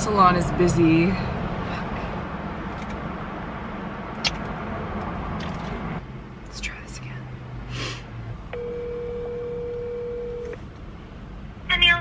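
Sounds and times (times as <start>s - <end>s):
telephone ringback tone: 8.5s - 10.6s.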